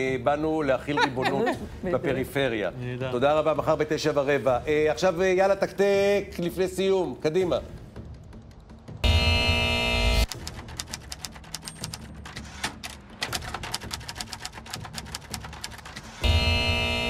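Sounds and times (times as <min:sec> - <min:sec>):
typewriter keys clacking: 0:10.3 - 0:16.2.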